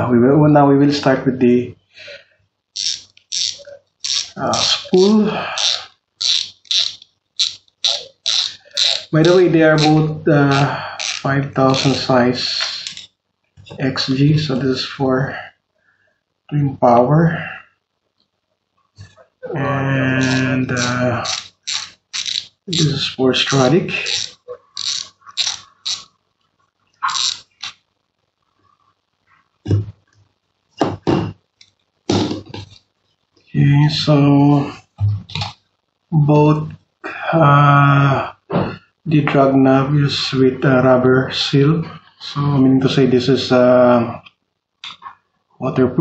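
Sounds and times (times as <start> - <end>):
fishing reel ratchet clicking: 2.8 - 12.1, 12.8 - 13.1, 20.2 - 23.0, 24.0 - 26.1, 27.2 - 27.7.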